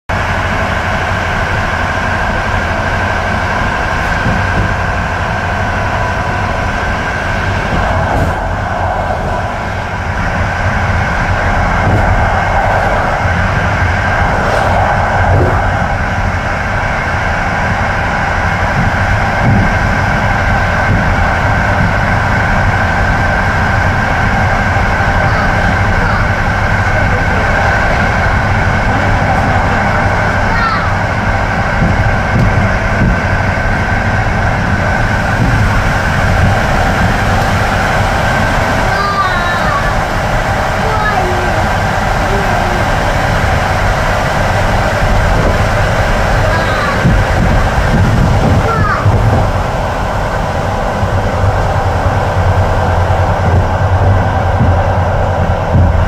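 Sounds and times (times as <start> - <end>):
train rumble: 0.0 - 56.0
high hum: 0.1 - 56.0.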